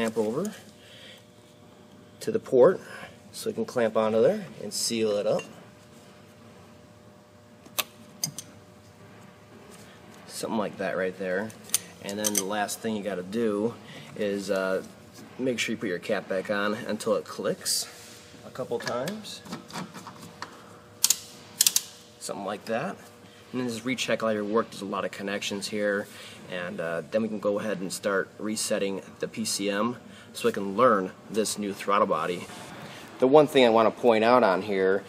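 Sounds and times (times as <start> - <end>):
sharp metallic clicks of pliers: 21.0 - 21.9.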